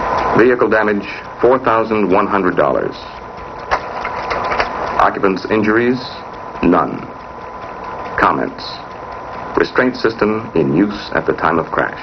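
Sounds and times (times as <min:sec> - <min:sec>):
film projector hum and hiss: 0:00.0 - 0:12.0
clicks and crackles: 0:03.6 - 0:05.0.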